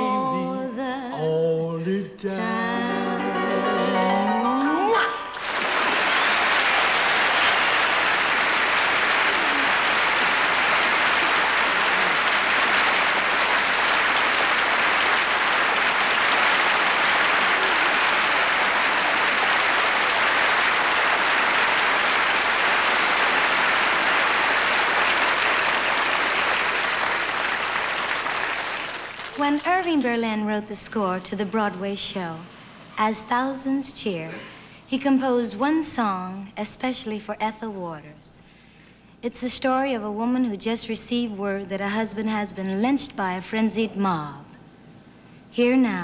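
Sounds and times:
audience applause: 0:05.2 - 0:29.7.

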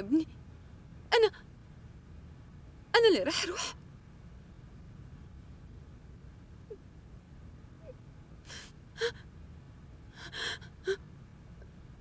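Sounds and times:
woman gasping tearful breaths: 0:10.2 - 0:11.0.

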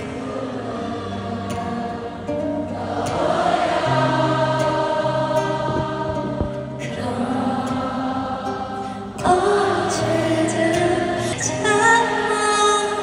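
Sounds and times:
live concert music through speakers: 0:00.0 - 0:13.0.

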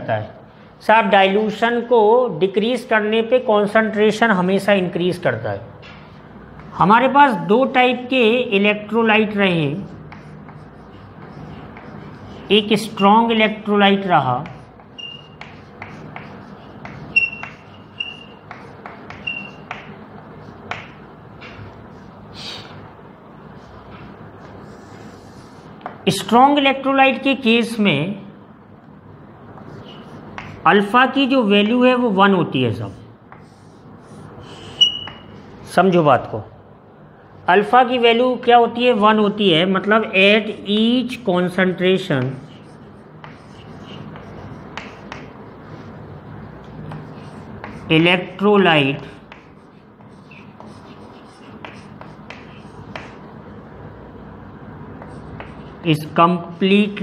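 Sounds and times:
low room noise: 0:00.0 - 0:57.0
chalk scratching: 0:09.8 - 0:13.4, 0:14.2 - 0:22.7, 0:23.4 - 0:26.0, 0:29.5 - 0:30.7, 0:32.8 - 0:35.8, 0:42.1 - 0:48.1, 0:48.9 - 0:53.3, 0:55.0 - 0:57.0
chalk tapping on blackboard: 0:10.0 - 0:12.5, 0:14.4 - 0:21.7, 0:29.5 - 0:30.6, 0:33.3 - 0:35.4, 0:42.1 - 0:45.4, 0:46.7 - 0:47.9, 0:49.1 - 0:53.2, 0:55.0 - 0:55.8.

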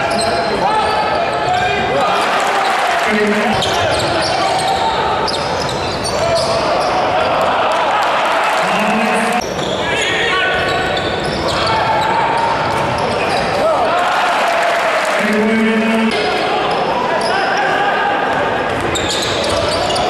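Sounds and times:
crowd shouting: 0:01.6 - 0:05.2, 0:06.1 - 0:10.7, 0:11.5 - 0:18.7.

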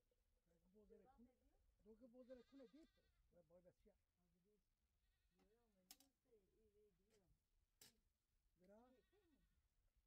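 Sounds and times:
faint livestock bleating: 0:02.0 - 0:03.3, 0:08.7 - 0:09.6.

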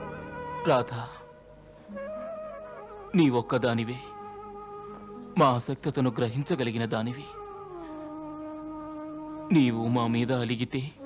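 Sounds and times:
sustained synthesizer chord: 0:00.0 - 0:09.5.

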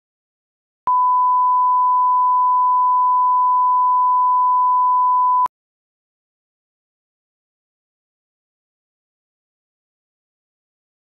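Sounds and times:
sine-wave test tone: 0:00.9 - 0:05.5.

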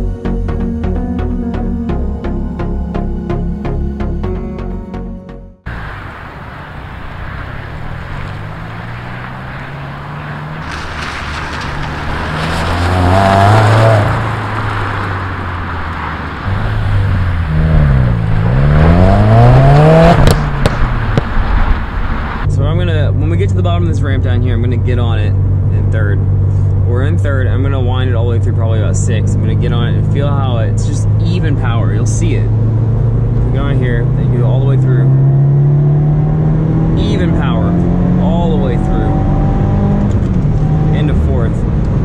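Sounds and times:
car engine revving: 0:05.7 - 0:42.0.

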